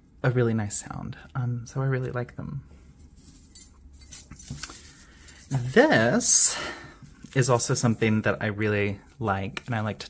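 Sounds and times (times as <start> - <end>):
metallic jewelry clinks: 3.0 - 6.2.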